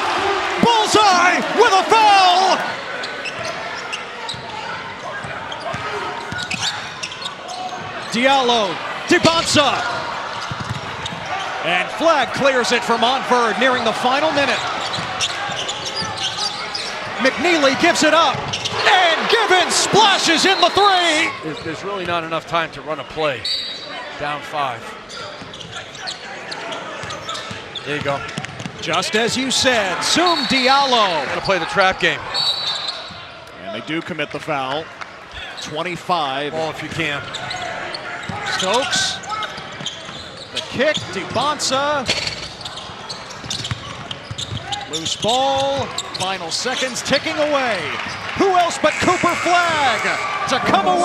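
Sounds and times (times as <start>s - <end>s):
crowd voices: 0.0s - 51.0s
sneaker squeaks: 3.0s - 8.2s, 10.3s - 11.5s, 14.5s - 17.1s, 18.3s - 18.8s, 25.1s - 28.7s, 32.3s - 33.2s, 37.2s - 41.2s, 42.0s - 47.0s.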